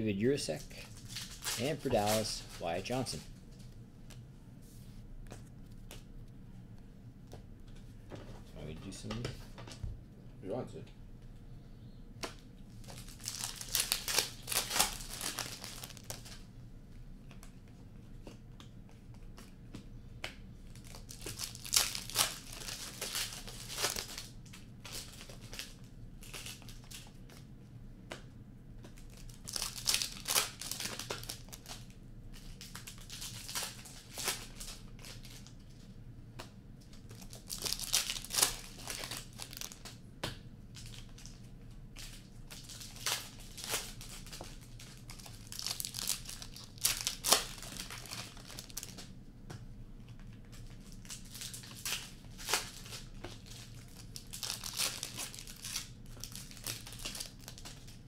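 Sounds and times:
foil wrappers tearing and crinkling: 0.6s - 3.2s, 12.8s - 16.4s, 20.7s - 27.1s, 28.9s - 35.5s, 37.0s - 40.0s, 42.0s - 49.0s, 50.6s - 58.0s
cards being handled: 0.6s - 4.2s.

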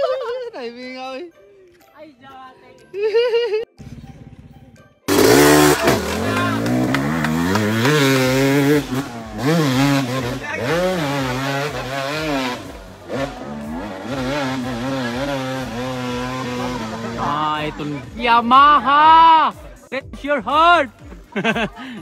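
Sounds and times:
dirt bike engine revving: 5.1s - 18.8s.

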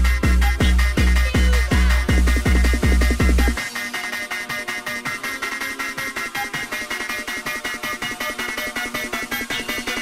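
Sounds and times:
fast even percussion: 0.0s - 10.0s.

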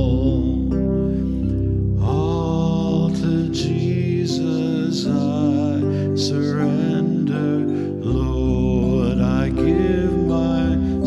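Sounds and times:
instrumental accompaniment: 0.0s - 11.0s
congregation singing a hymn: 2.1s - 11.0s.

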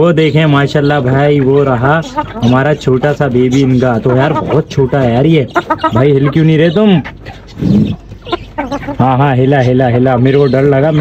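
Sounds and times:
pigeon cooing: 1.3s - 11.0s.

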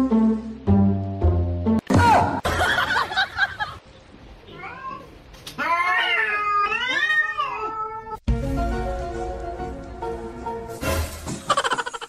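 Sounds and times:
cat meowing: 4.4s - 8.2s.

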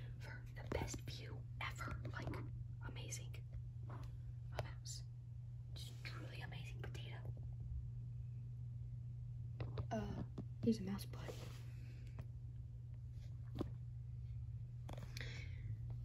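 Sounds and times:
low electrical hum: 0.0s - 16.0s
person whispering: 0.2s - 3.4s, 5.8s - 7.3s.

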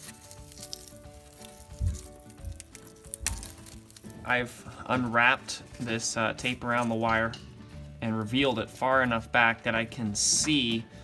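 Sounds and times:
tape crinkling as peeled: 0.0s - 4.6s
soft background music: 0.0s - 11.0s
dull handling thumps: 1.6s - 3.6s.

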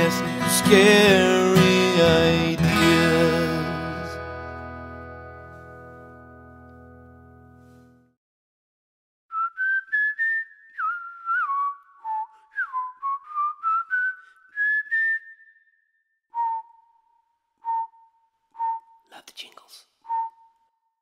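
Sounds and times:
person whistling a tune: 0.0s - 4.2s, 9.3s - 19.1s, 20.0s - 20.8s.

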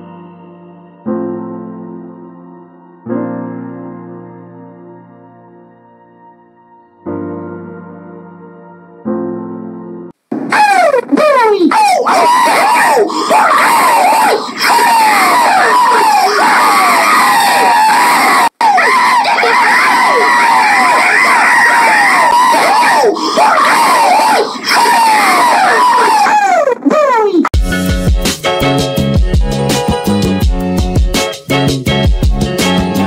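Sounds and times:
people screaming: 10.5s - 27.4s.

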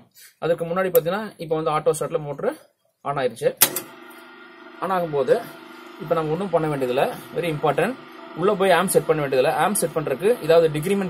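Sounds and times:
steady electrical hum: 3.7s - 11.0s.

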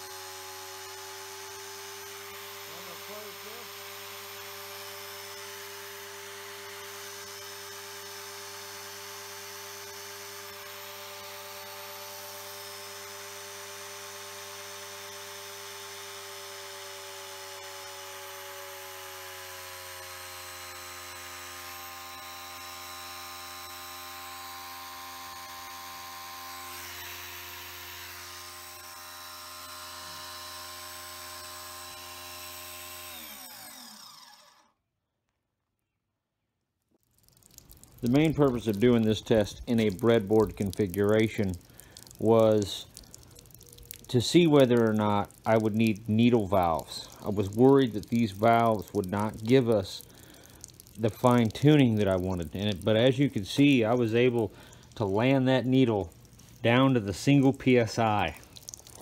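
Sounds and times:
electric pump motor whining: 0.0s - 34.9s, 38.0s - 59.0s.

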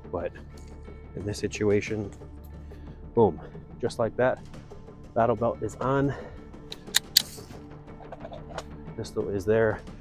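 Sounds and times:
soft background music: 0.0s - 10.0s
pistol clicks: 6.7s - 7.5s.

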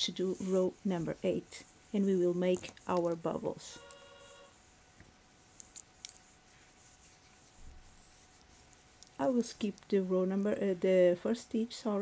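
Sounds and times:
soft rustle of yarn: 0.0s - 12.0s.

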